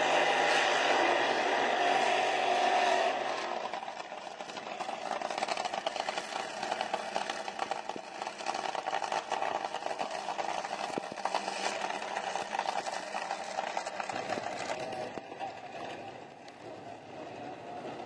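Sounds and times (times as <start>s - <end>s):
dragster engines idling: 1.9s - 18.0s.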